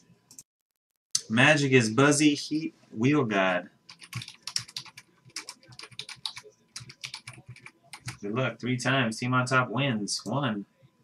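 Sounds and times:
computer keyboard typing: 3.9 - 8.2.

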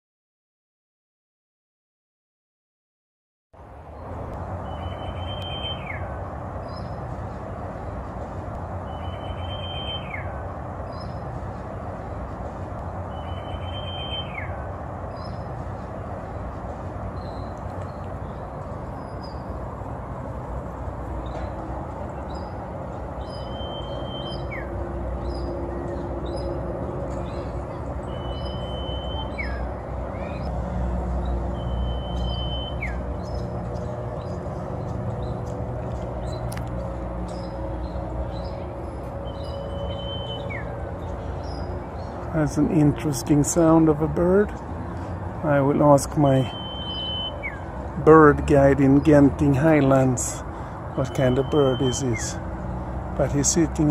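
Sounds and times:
low traffic rumble: 3.6 - 53.9
bird long whistles: 31.6 - 33.0, 46.5 - 47.6.

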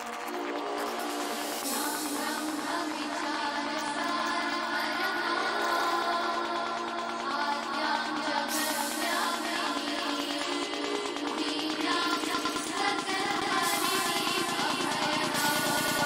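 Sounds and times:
psychedelic trance music: 0.0 - 16.0.

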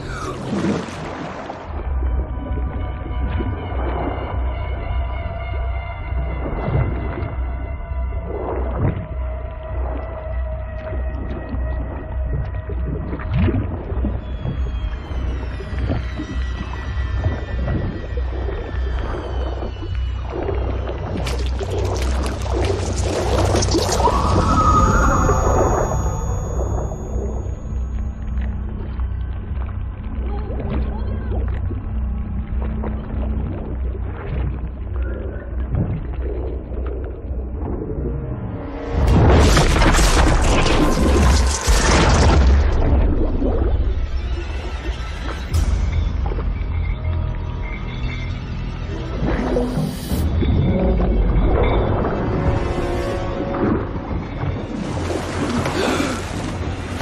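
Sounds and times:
swirling water: 0.0 - 46.8, 48.9 - 57.0
film score: 0.0 - 57.0
muffled underwater rumble: 0.0 - 57.0
film score of held high tones: 22.9 - 31.3, 43.7 - 56.3.

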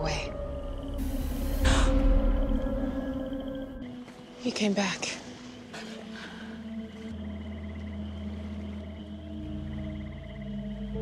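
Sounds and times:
deep bass drone: 0.0 - 3.9
ambient music with held notes: 0.0 - 11.0.

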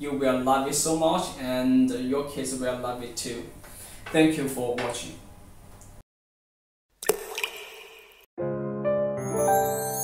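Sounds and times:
water splash: 7.0 - 8.3.

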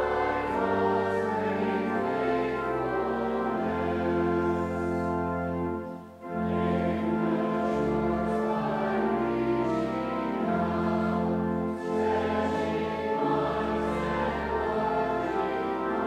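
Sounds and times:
congregation singing a hymn: 0.0 - 16.0
low instrumental accompaniment: 0.0 - 16.0.

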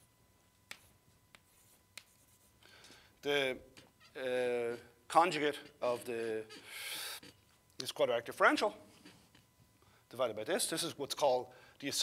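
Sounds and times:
chalk tapping on chalkboard: 0.7 - 2.5
chalk scratching on chalkboard: 0.7 - 2.6, 4.5 - 7.4.

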